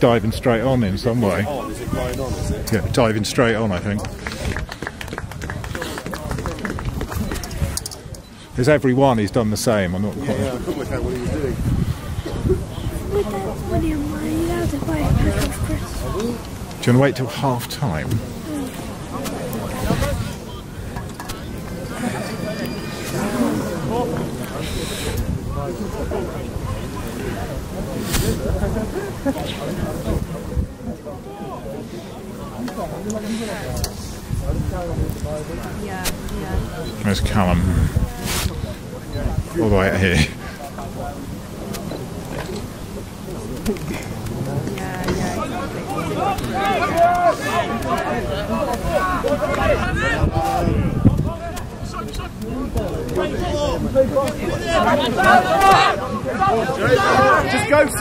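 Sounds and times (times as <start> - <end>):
wind on microphone: 0.0 - 8.4, 10.1 - 16.9, 18.0 - 31.9, 33.1 - 56.0
people talking and calling out: 0.0 - 58.0
distant voices calling: 10.1 - 30.1.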